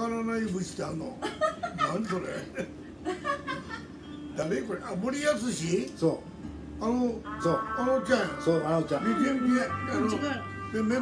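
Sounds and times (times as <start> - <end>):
man talking with a chuckle: 1.0 - 3.9.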